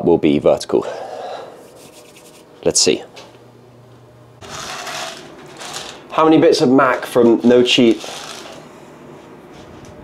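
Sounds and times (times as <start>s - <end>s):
faint steady hum: 0.0s - 10.0s
dry macaroni cup rattling: 4.4s - 6.0s, 7.9s - 8.6s.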